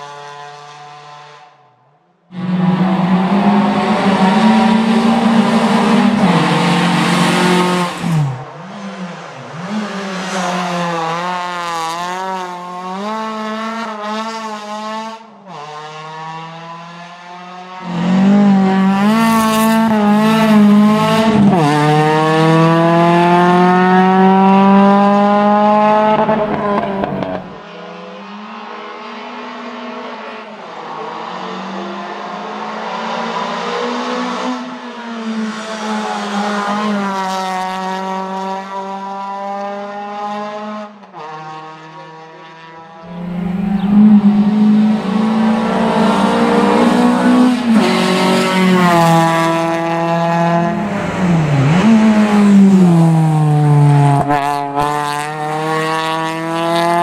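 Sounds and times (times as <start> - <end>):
race car engine revving: 2.3 - 27.6, 30.8 - 57.0.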